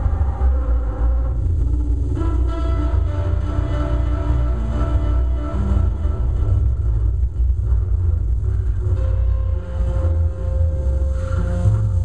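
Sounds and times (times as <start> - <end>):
loud electronic music: 0.0 - 12.0.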